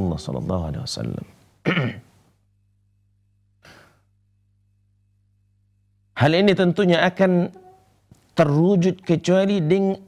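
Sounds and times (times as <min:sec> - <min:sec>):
man speaking: 0:00.0 - 0:01.3, 0:08.4 - 0:10.0
faint low hum: 0:00.0 - 0:10.0
man drawing breath: 0:03.6 - 0:04.1.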